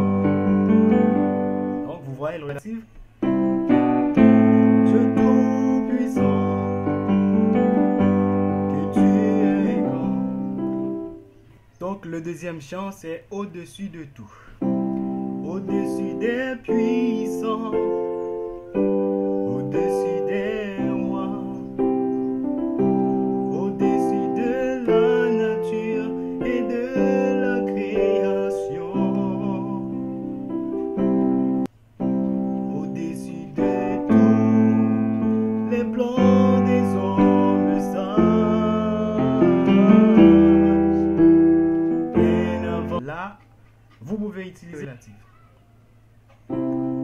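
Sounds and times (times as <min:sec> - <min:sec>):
keyboard piano chords: 0:00.0 - 0:12.0, 0:14.4 - 0:43.1, 0:46.1 - 0:47.0
person singing a wavering note: 0:04.2 - 0:10.6.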